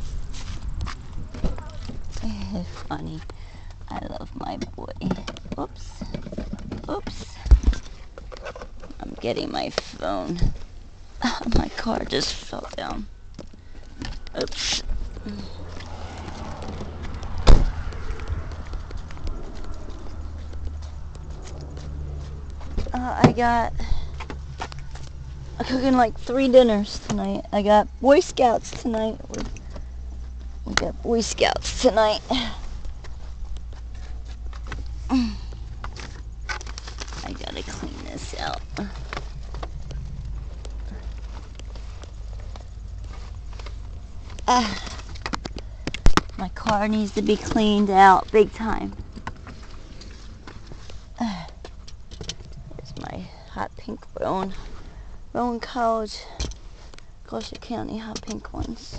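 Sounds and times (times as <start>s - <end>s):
low rumble: 13.0s - 55.4s.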